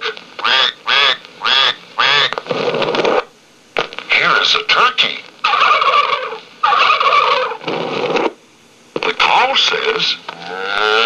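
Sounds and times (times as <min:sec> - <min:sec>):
recorded duck quacking from toy: 0:00.4 - 0:02.4, 0:05.4 - 0:07.6.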